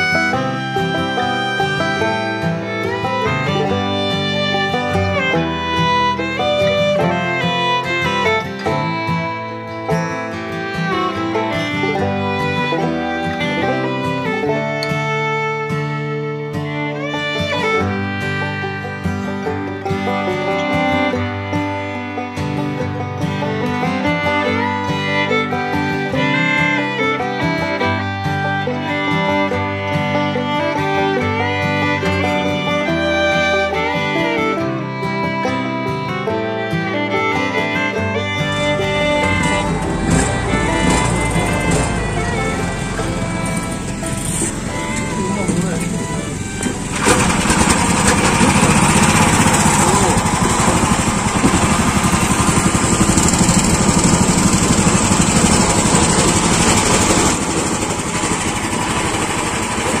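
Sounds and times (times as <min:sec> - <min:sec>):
fiddle music: 0:00.0 - 1:00.0
boat inboard engine running: 0:38.3 - 1:00.0.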